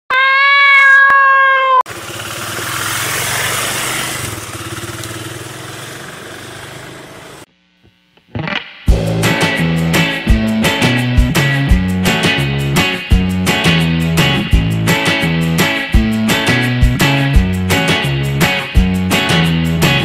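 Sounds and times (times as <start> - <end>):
cat meowing: 0.1 - 1.8
motorcycle engine: 1.9 - 7.5
guitar music: 8.3 - 20.0.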